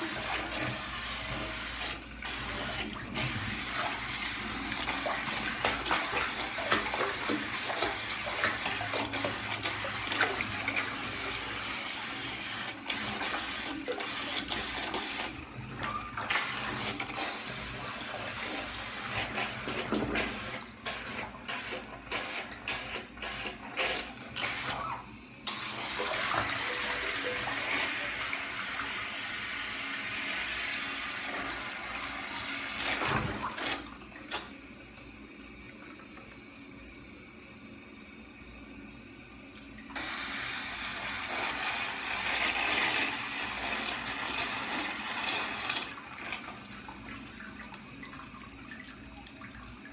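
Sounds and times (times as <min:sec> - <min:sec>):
water splashes and drips: 0:00.0 - 0:11.8, 0:32.7 - 0:36.4, 0:45.4 - 0:49.9
water pouring into bathtub: 0:00.0 - 0:38.7, 0:39.3 - 0:49.9.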